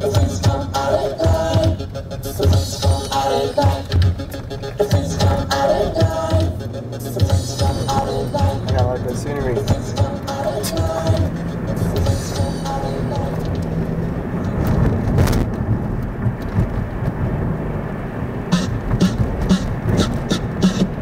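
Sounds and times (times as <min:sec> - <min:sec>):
regular beat: 0:00.0 - 0:13.6, 0:18.5 - 0:21.0
music playing: 0:00.0 - 0:14.6, 0:18.5 - 0:21.0
car rumble: 0:00.0 - 0:21.0.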